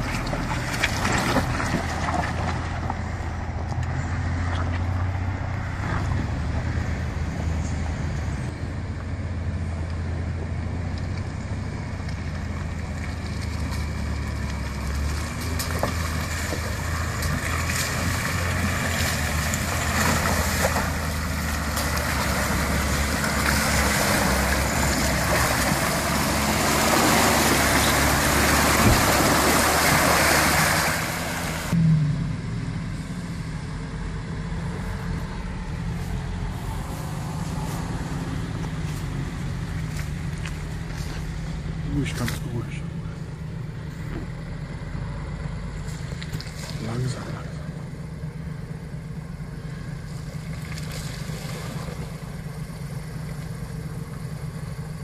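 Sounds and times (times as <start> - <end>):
wheels churning through mud: 0.0 - 31.8, 33.5 - 55.0
off-road vehicle engine: 0.0 - 55.0.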